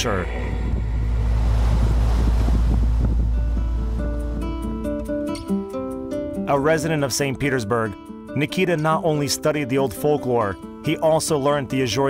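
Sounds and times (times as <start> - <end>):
wind rumbling on microphone: 0.0 - 5.4
waves washing on shore: 0.6 - 4.9.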